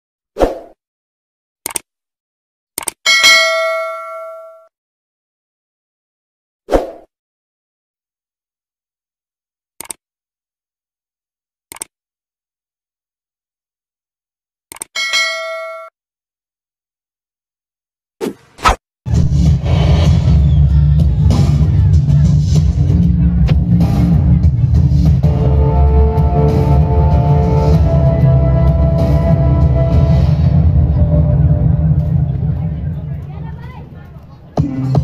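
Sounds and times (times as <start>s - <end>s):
quick clicks: 1.6s - 1.9s, 2.8s - 3.0s, 9.8s - 10.0s, 11.7s - 11.9s, 14.7s - 14.9s
mouse clicks: 1.7s - 1.9s, 9.8s - 10.0s
bell-like notification ding: 3.1s - 4.7s, 15.0s - 15.9s.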